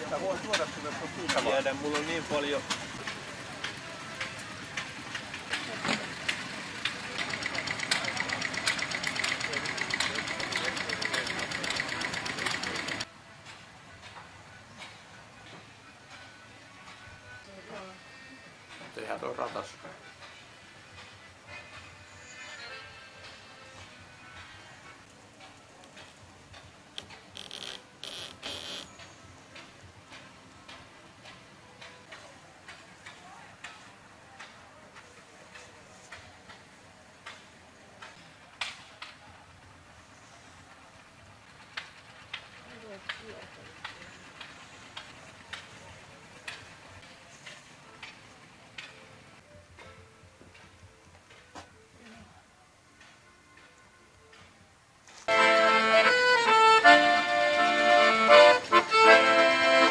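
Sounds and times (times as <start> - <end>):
old engine knocking: 2.7 - 13.1, 41.4 - 46.7.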